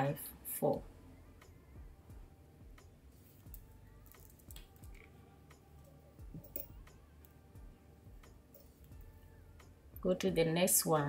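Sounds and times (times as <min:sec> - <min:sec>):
pearl beads clicking together: 0:03.4 - 0:05.1.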